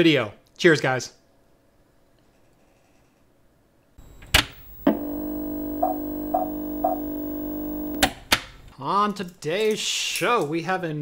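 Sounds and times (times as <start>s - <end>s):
short electronic pips: 4.0s - 8.1s.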